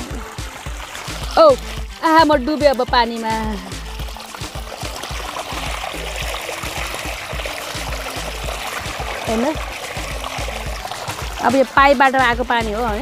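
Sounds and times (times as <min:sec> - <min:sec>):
background music: 0:00.0 - 0:13.0
water gushing and splashing: 0:00.0 - 0:13.0.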